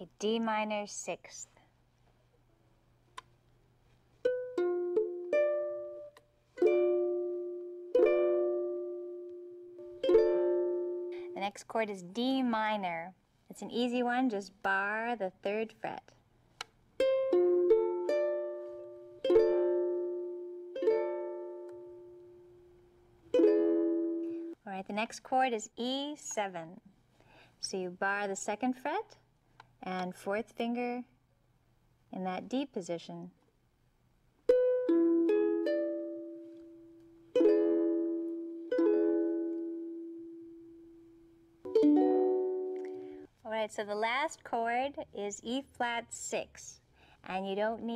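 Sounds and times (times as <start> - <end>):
ukulele chord plucked and strummed: 4.2 - 11.4, 17.0 - 24.6, 34.5 - 43.2.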